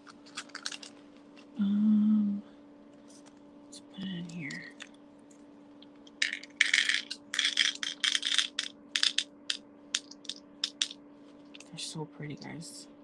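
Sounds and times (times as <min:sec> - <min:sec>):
beads pouring into container: 0:06.2 - 0:09.2.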